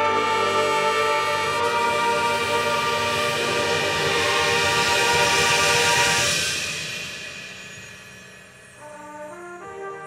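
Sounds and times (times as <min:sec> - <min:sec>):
brass horns holding a chord: 0:00.0 - 0:06.3.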